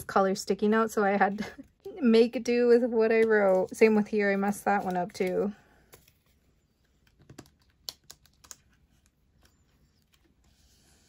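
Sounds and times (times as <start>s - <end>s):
faint plastic rustling: 3.0s - 11.0s.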